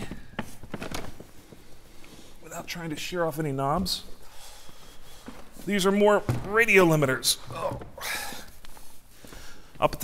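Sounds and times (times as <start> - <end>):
plastic cases knocking and scraping: 0.0 - 1.4.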